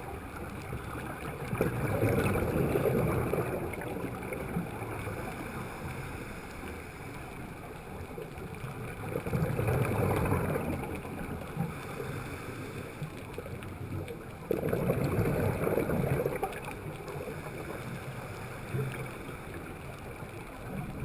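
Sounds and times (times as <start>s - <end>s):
gurgling regulator bubbles: 0.0s - 21.0s
underwater water rush: 0.0s - 21.0s.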